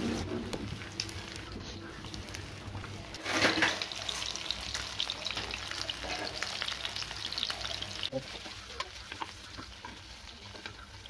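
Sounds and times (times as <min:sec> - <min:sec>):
fish sizzling in hot oil: 0:00.0 - 0:11.0
oil crackling and popping: 0:00.0 - 0:11.0.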